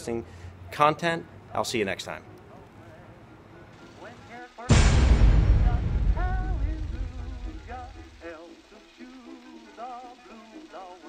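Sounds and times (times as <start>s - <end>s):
loud rush of noise with rumble: 4.7s - 8.3s.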